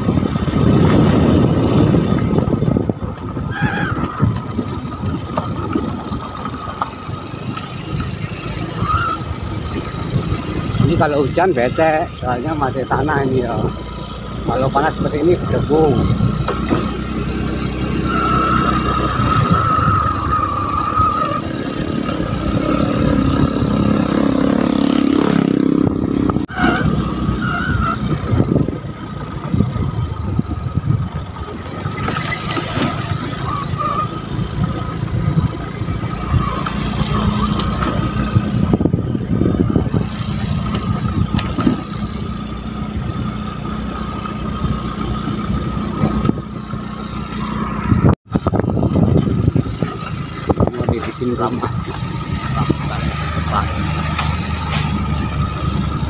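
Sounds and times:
motorcycle engine running: 0:00.0 - 0:56.0.

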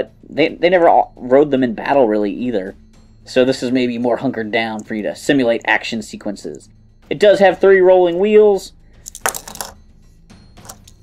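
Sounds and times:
plastic toy clattering: 0:09.1 - 0:09.8, 0:10.6 - 0:11.0.

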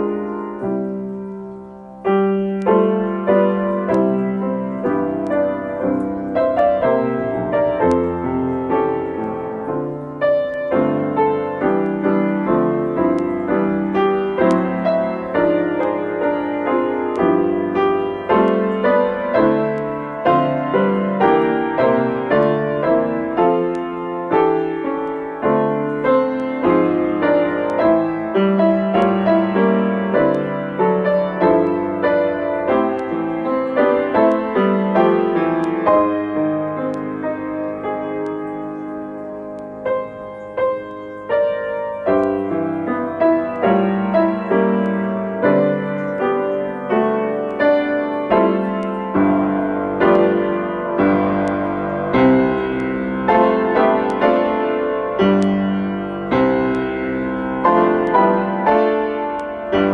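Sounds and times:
grand piano playing a hymn: 0:00.0 - 0:59.9.

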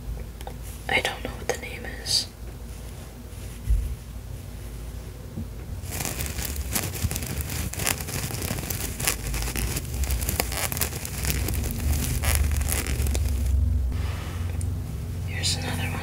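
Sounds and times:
fabric rustling on microphone: 0:02.6 - 0:13.6.

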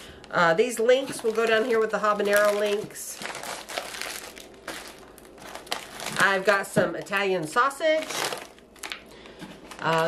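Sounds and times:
plastic wrapping crinkling: 0:00.1 - 0:10.0.

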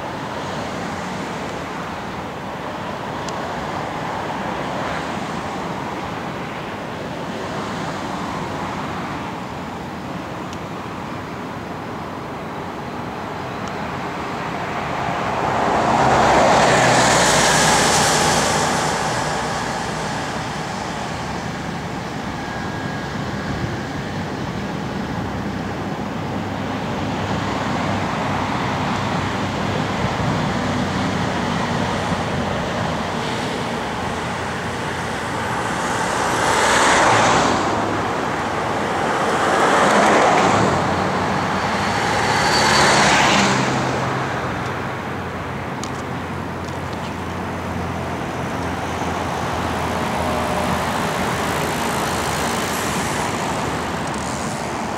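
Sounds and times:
cars passing close by: 0:00.0 - 0:54.9
steady traffic rumble: 0:00.0 - 0:54.9.

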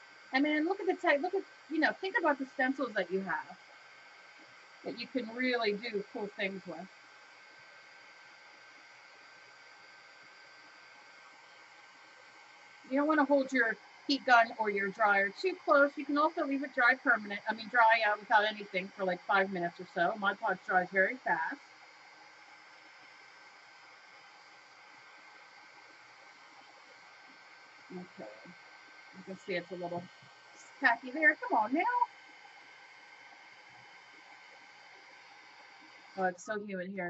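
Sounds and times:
heat gun blower hissing: 0:00.0 - 0:36.6.

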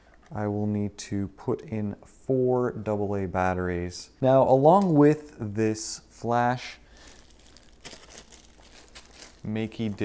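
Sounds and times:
plastic bag crinkling: 0:06.8 - 0:10.0.

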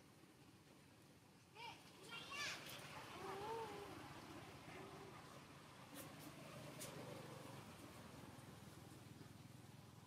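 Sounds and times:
macaque wavering coo: 0:03.2 - 0:04.0.

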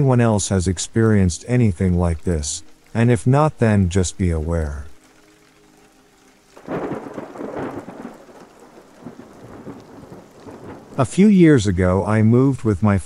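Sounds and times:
rain: 0:00.0 - 0:13.0
rolling thunder: 0:06.6 - 0:11.6.

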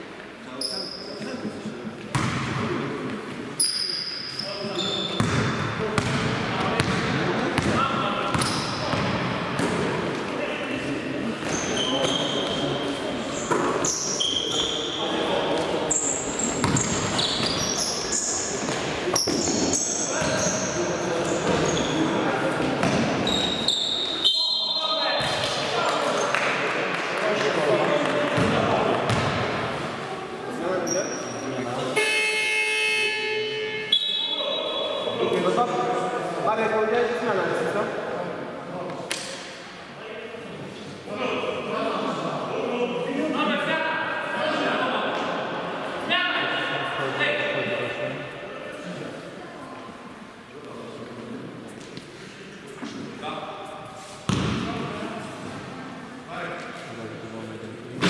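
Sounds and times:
sneakers squeaking: 0:00.6 - 0:01.4, 0:02.1 - 0:02.7, 0:03.4 - 0:10.3, 0:11.2 - 0:26.4, 0:28.4 - 0:29.8, 0:30.8 - 0:35.2, 0:54.2 - 0:54.8
basketball bouncing on court: 0:02.1 - 0:02.6, 0:05.2 - 0:09.8, 0:16.6 - 0:17.6, 0:28.4 - 0:29.5, 0:54.3 - 0:54.7.

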